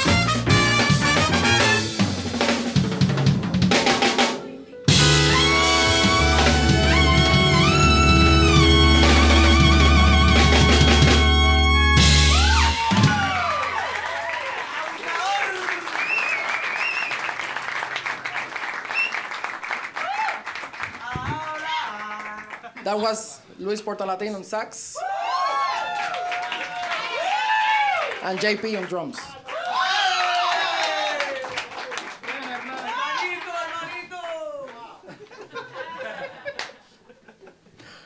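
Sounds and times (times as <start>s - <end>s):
latin jazz band playing: 0.0s - 13.8s
whooping cheers: 12.0s - 17.4s, 20.0s - 22.4s, 25.0s - 28.2s, 29.4s - 34.9s
audience applause: 12.3s - 22.8s, 25.3s - 34.9s.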